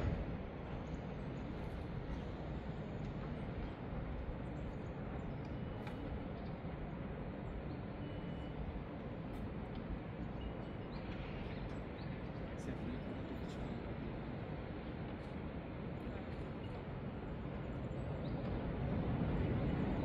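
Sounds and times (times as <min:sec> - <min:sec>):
distant city traffic rumble: 0:00.0 - 0:20.0.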